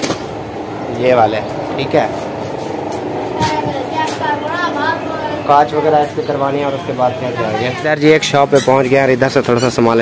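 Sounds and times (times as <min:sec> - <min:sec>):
passing traffic hum: 0:00.0 - 0:10.0.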